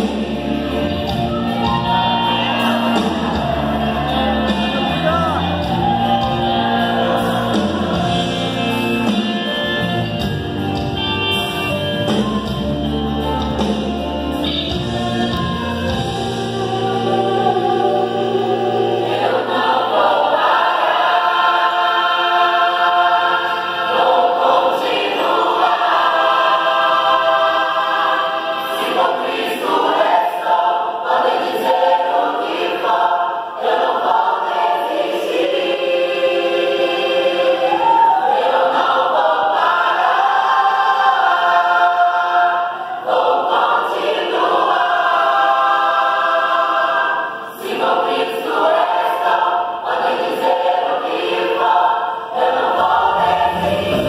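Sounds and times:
gospel choir singing in harmony: 0.0s - 54.0s.

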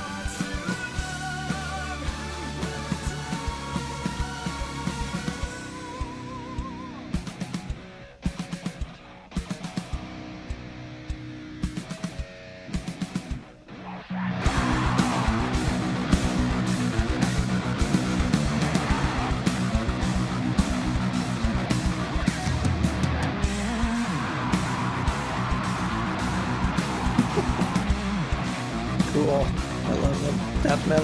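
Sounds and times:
heavy electric guitar riff: 0.0s - 31.0s
rock band playing: 0.0s - 31.0s.

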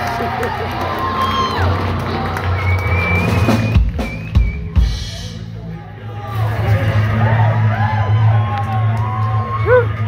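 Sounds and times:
audience whooping: 0.0s - 5.0s, 6.2s - 10.0s.

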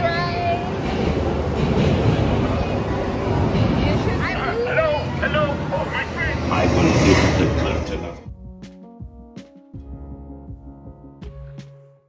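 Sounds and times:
ride vehicle rumbling and rattling: 0.0s - 8.2s.

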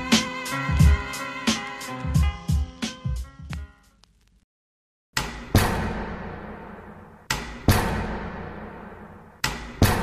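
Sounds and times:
deep booming percussive hits: 5.3s - 10.0s.

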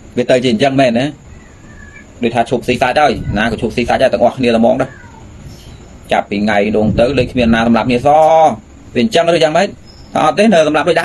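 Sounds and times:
faint background sound: 0.0s - 11.0s
man speaking: 0.2s - 1.2s, 2.2s - 5.0s, 6.1s - 11.0s.

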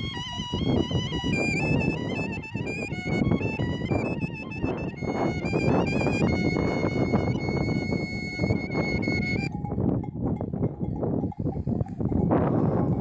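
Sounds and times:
wooden flute long high note: 0.0s - 9.5s.

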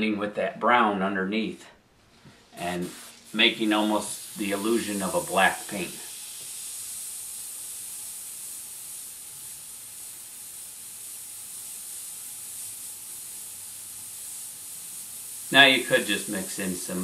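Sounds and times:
airbrush hissing: 2.1s - 17.0s.

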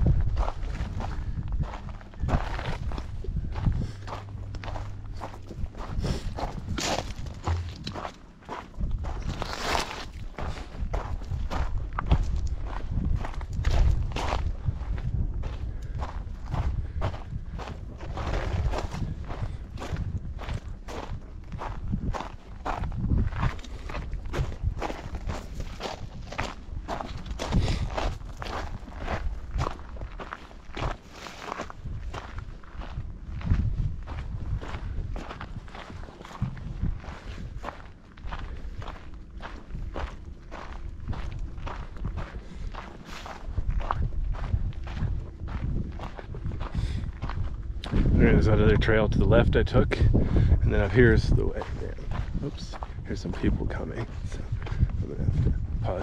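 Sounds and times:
footsteps on gravel trail: 0.0s - 56.0s.

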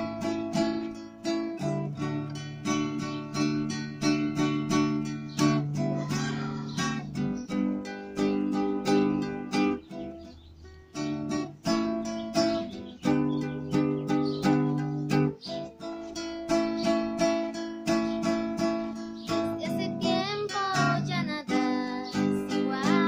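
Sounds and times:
acoustic guitar strumming: 0.0s - 23.0s.

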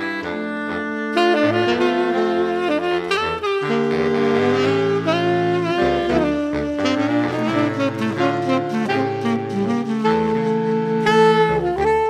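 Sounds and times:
saxophone ensemble playing chords: 0.0s - 12.0s.

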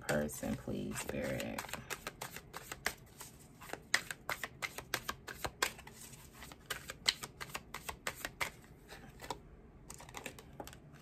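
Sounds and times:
cards being shuffled: 0.1s - 10.8s.

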